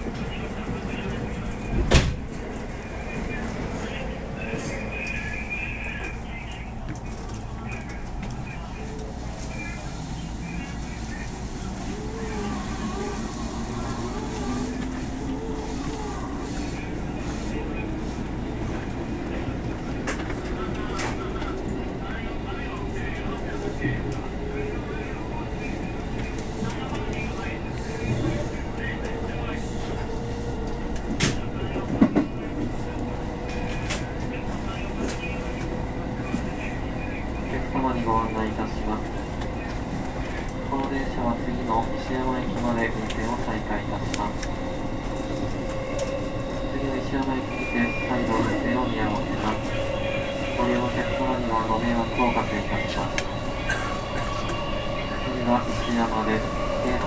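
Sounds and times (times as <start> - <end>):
wheels rumbling on rail: 0.0 - 57.0.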